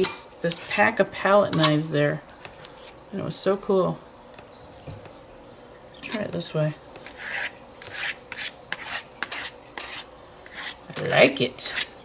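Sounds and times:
palette knife scraping paint: 7.0s - 12.0s.

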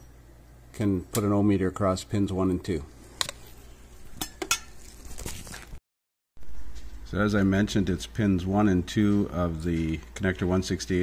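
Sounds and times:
steady low hum: 6.4s - 11.0s.

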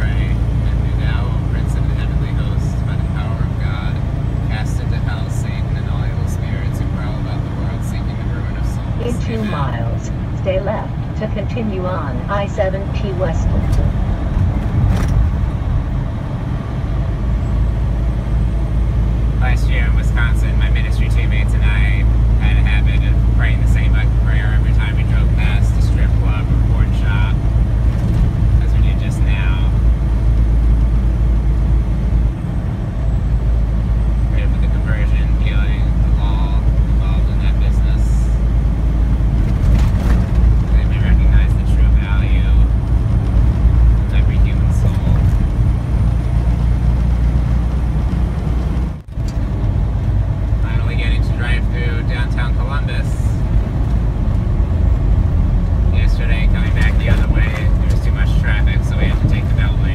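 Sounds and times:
diesel truck engine drone: 0.0s - 59.9s.

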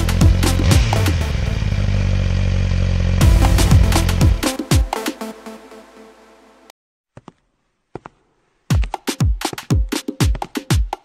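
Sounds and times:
motorcycle engine running: 0.0s - 4.6s.

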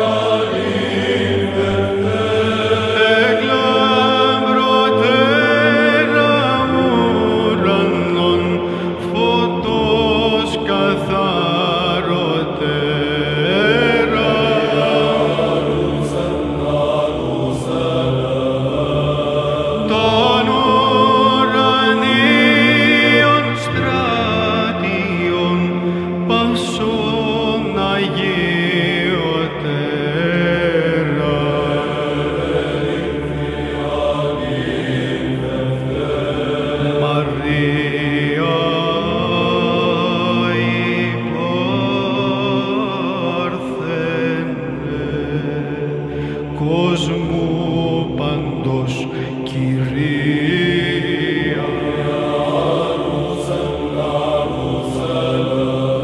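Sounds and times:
chanted sung line: 0.0s - 56.0s
held low drone: 0.0s - 56.0s.

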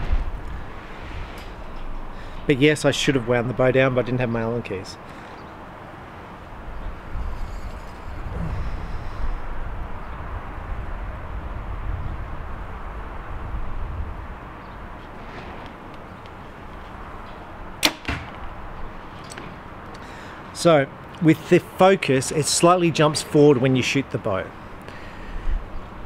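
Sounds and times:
low rumbling noise: 0.0s - 4.5s, 6.0s - 20.3s.

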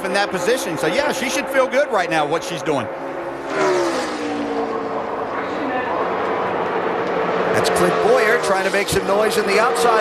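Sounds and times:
race car engines roaring: 0.0s - 10.0s.

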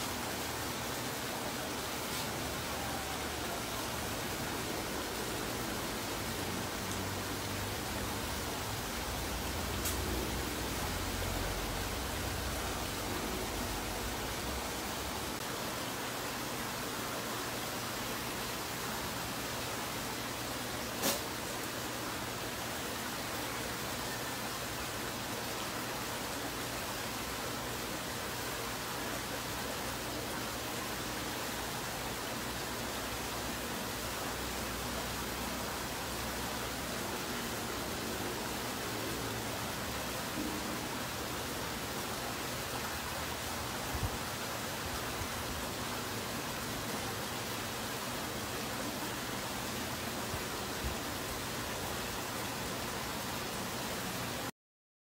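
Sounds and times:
steady hiss: 0.0s - 54.5s.

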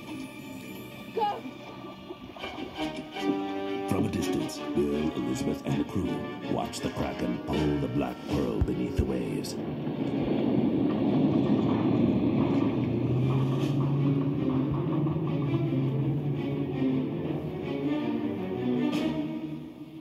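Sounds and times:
dramatic music low notes: 0.0s - 20.0s
ship sinking rumble: 0.4s - 20.0s.

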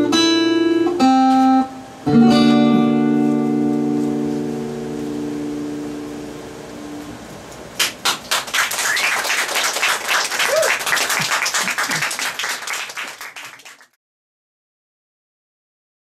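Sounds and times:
acoustic guitar chord ringing: 0.0s - 7.1s
audience applause: 7.8s - 14.0s.

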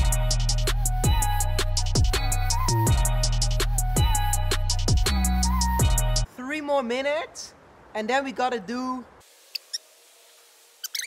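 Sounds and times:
quiet hiss: 6.3s - 11.0s
faint high squeaks: 10.8s - 11.0s.

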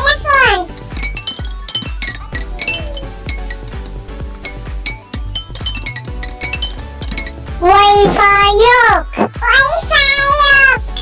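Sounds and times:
toy xylophone notes: 0.1s - 8.2s.

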